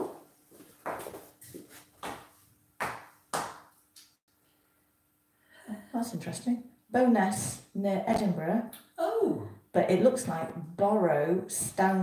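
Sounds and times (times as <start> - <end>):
heeled shoes on tile floor: 0.0 - 3.6.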